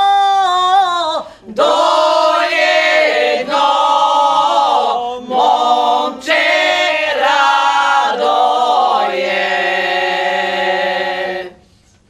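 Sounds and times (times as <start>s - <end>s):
women singing a cappella chord: 0.0s - 11.7s.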